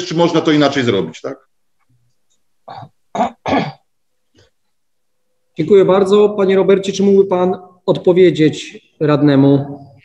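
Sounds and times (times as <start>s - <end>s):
person clearing throat: 2.6s - 3.9s.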